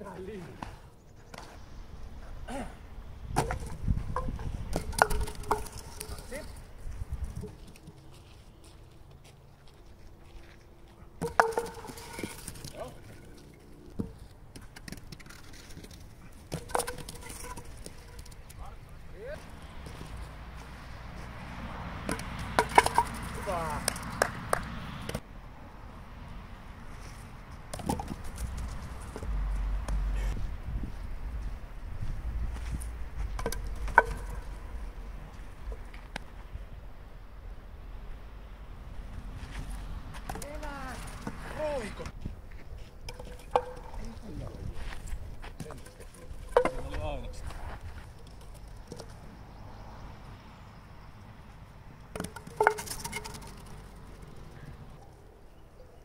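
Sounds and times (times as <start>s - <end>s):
wooden bats landing on asphalt: 3.2s - 8.3s, 11.2s - 25.2s, 27.5s - 30.4s, 31.3s - 36.6s, 39.4s - 49.6s, 52.0s - 54.8s
wooden clacks and clatters: 3.4s - 6.3s, 11.2s - 18.6s, 22.1s - 24.7s, 33.3s - 34.7s, 43.1s - 44.2s, 45.5s - 47.0s, 48.0s - 49.2s, 52.1s - 54.6s.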